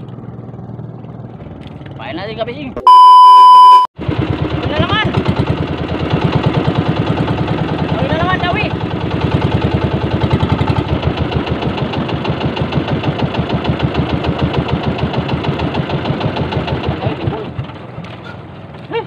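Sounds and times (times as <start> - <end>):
boat engine running: 0.0 - 2.8, 4.0 - 19.0.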